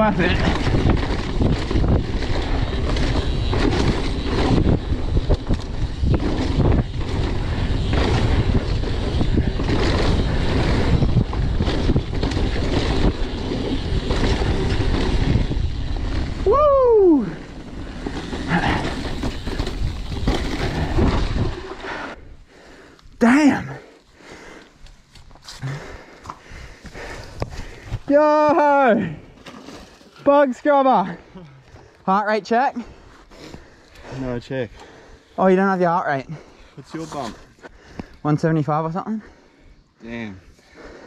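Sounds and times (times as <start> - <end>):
bike knocking and rattling: 0.0 - 22.2, 24.5 - 30.6
wind buffeting microphone: 0.0 - 22.4
bike tyre noise: 0.0 - 41.0.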